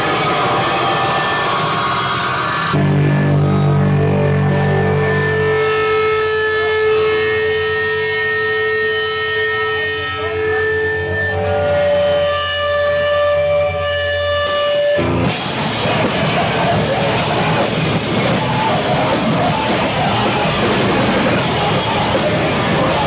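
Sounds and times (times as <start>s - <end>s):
electric bass drone: 0.0s - 23.0s
held tones from amplified instruments: 0.0s - 23.0s
noise-rock band wall of noise: 0.0s - 23.0s.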